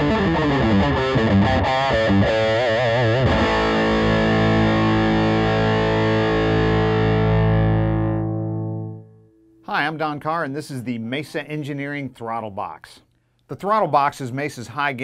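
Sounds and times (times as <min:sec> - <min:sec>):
distorted electric guitar: 0:00.0 - 0:09.3.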